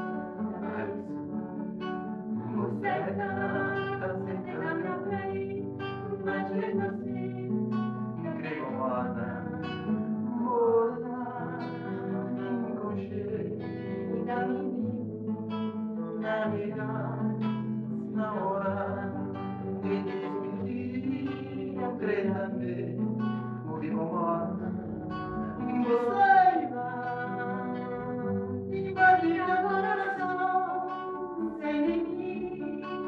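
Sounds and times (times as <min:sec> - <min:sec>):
woman singing: 0:00.0 - 0:01.8, 0:02.4 - 0:33.0
acoustic guitar plucked and strummed: 0:00.0 - 0:33.0.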